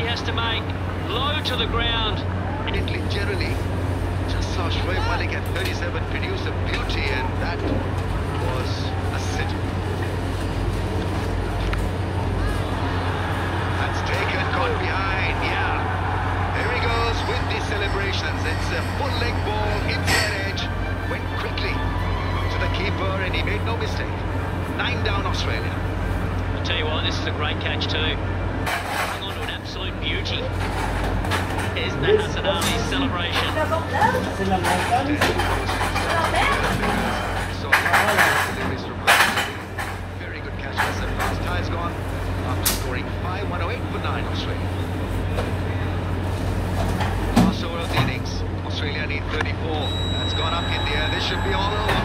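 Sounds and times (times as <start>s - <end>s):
stadium crowd hubbub: 0.0s - 27.6s, 28.2s - 49.0s, 49.6s - 52.0s.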